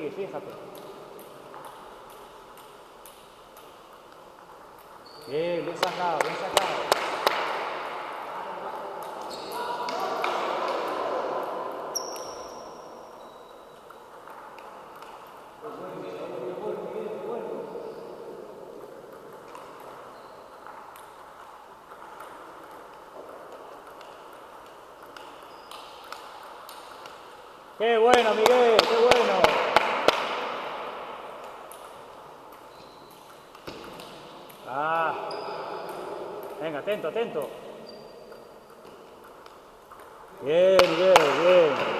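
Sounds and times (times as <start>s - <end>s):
table tennis ball clicking: 0.7s - 5.0s, 18.8s - 27.4s, 31.4s - 34.7s.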